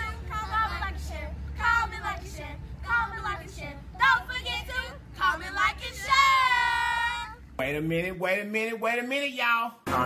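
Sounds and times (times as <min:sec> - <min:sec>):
children and woman singing: 0:00.0 - 0:07.4
steady low hum: 0:00.0 - 0:08.7.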